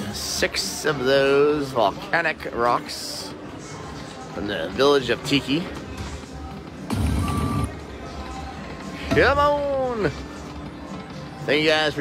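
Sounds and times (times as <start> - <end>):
slot machine background music: 4.4 - 12.0.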